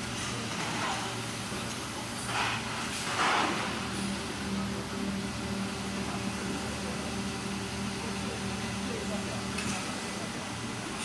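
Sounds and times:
machinery hum: 0:00.0 - 0:11.0.

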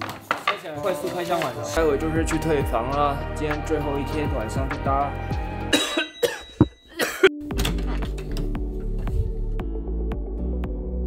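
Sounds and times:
background music: 0:00.0 - 0:11.0
man coughing: 0:05.7 - 0:07.4.

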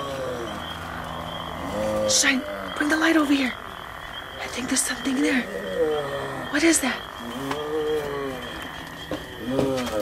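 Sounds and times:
croaking zombie groan: 0:00.0 - 0:10.0
faint high whine: 0:00.0 - 0:10.0.

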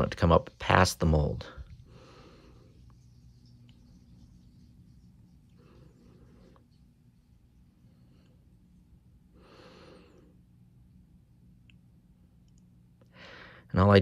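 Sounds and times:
low room hum: 0:00.0 - 0:14.0
faint breaths: 0:01.4 - 0:10.6, 0:13.0 - 0:13.7.

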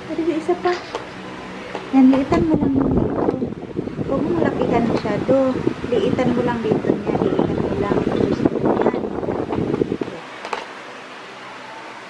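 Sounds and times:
low rumbling on microphone: 0:01.9 - 0:10.2.

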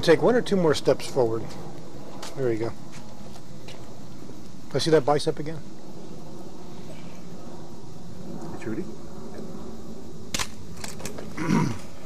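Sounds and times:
short low grunt: 0:11.4 - 0:12.0.

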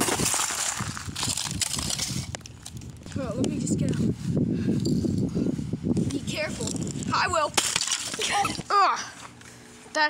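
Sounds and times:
ice plates crunching and clinking: 0:00.0 - 0:02.9, 0:07.6 - 0:08.6.

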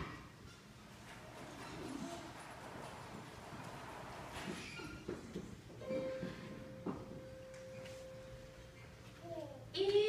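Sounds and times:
footsteps on wooden stage: 0:02.4 - 0:09.3.

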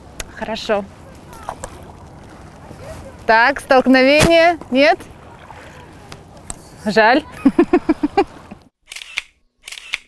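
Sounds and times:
paddle dipping through water: 0:00.8 - 0:08.7.

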